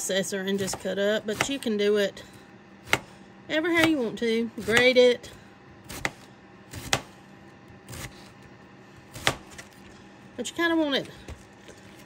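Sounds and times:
knife slicing cabbage on board: 5.8 - 7.2, 9.0 - 9.8.

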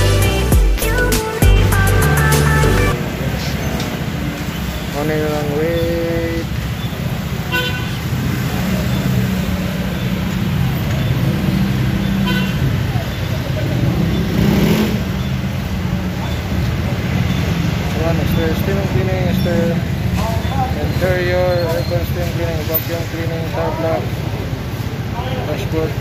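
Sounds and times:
background music: 0.0 - 3.0
traffic and engine noise: 1.2 - 26.0.

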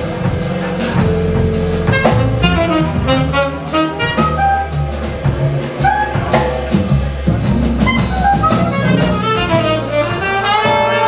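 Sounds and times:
bass line: 0.0 - 11.0
drum kit: 0.0 - 11.0
tenor saxophone melody: 1.0 - 5.0, 7.8 - 11.0.

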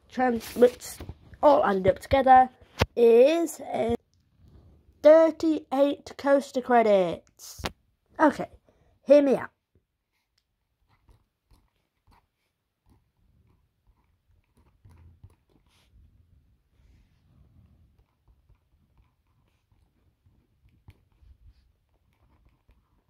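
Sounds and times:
pen scratching on paper: 10.8 - 16.1, 16.8 - 23.0.

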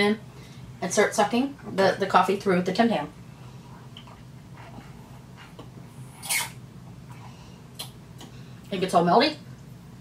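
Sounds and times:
hissy slurp: 6.1 - 6.6.

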